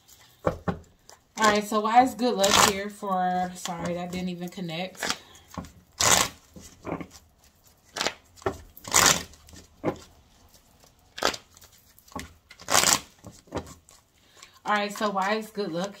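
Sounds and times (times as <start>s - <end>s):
cards being shuffled: 4.9s - 16.0s.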